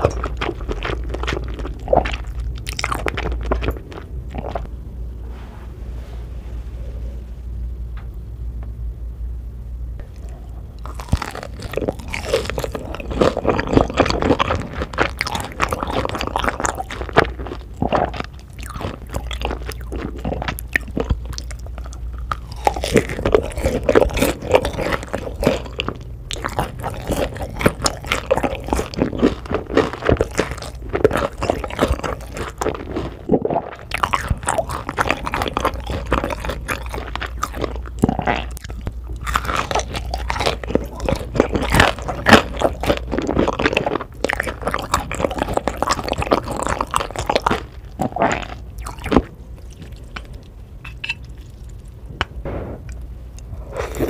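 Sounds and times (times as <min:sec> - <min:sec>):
person biting and chewing food: 0:00.0 - 0:04.7, 0:10.0 - 0:54.0.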